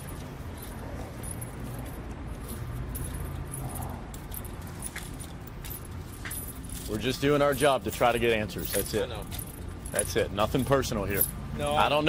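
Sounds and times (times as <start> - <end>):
light metallic jingling: 0.0 - 12.0
low rumble of outdoor noise: 0.0 - 12.0.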